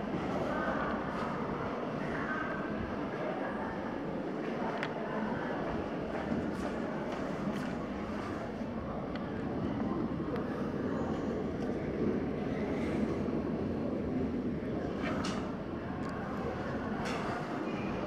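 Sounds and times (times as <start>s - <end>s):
terminal hall background rumble: 0.0s - 18.0s.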